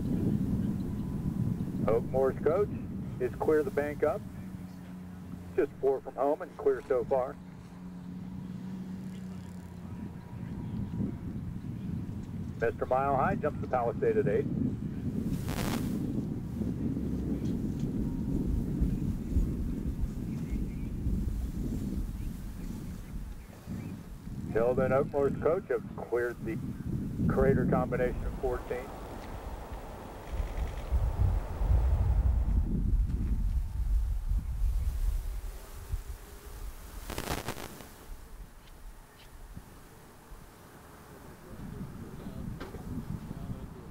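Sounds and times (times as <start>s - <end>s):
wind buffeting microphone: 0.0s - 5.6s, 7.7s - 37.3s, 41.4s - 43.9s
brief hiss: 15.3s - 16.1s, 28.2s - 32.7s, 34.9s - 38.2s.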